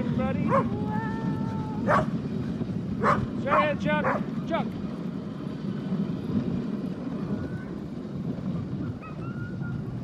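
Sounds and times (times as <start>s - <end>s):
sled rushing over snow: 0.0s - 10.0s
wind on microphone: 0.0s - 10.0s.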